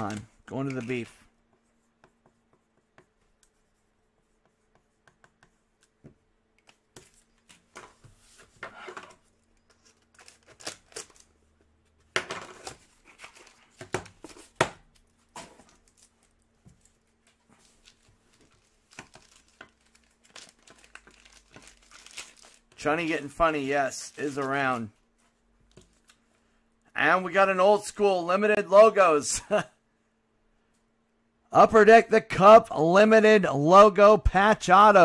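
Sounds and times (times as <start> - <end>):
faint steady hum: 0.0 - 35.0
cardboard packaging handled: 12.4 - 23.3.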